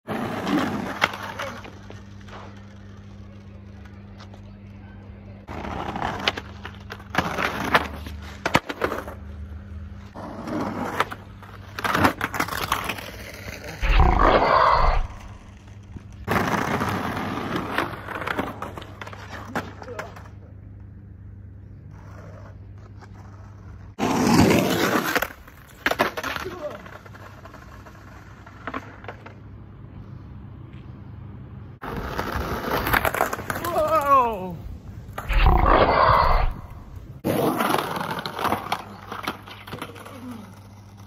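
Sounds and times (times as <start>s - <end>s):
skateboard crash on asphalt: 0.1s - 3.1s, 5.5s - 9.2s, 10.2s - 20.3s, 24.0s - 29.4s, 31.8s - 34.1s, 35.1s - 41.0s
man yelling: 33.6s - 34.6s.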